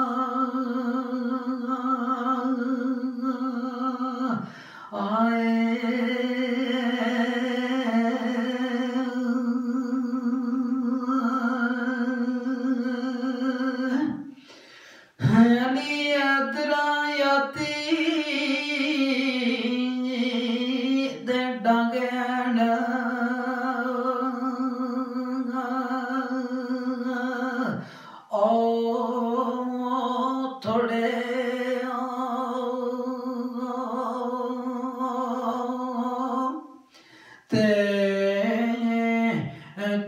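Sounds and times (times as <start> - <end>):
man singing a long note: 37.5 - 40.0.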